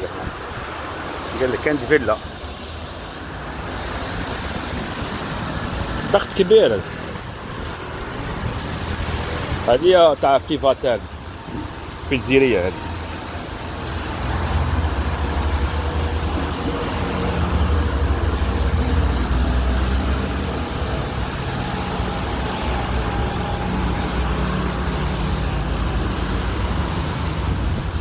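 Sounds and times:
cars driving past: 0:00.0 - 0:28.0
tyre noise on wet road: 0:00.0 - 0:28.0.

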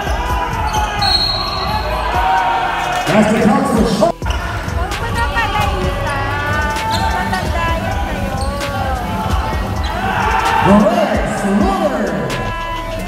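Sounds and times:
hip-hop beat: 0:00.0 - 0:13.0
players' voices: 0:00.0 - 0:13.0.

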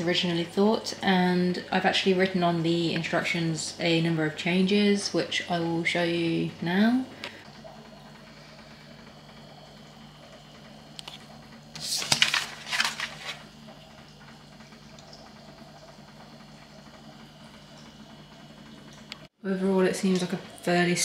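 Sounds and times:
paper rustling: 0:11.8 - 0:13.5.

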